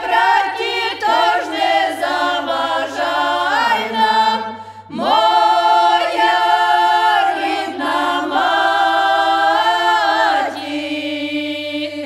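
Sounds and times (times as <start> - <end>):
women singing a cappella: 0.0 - 12.0.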